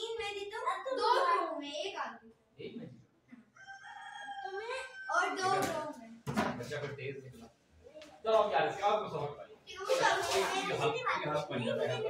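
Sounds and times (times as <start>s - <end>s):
rooster-like crowing call: 3.6s - 5.4s.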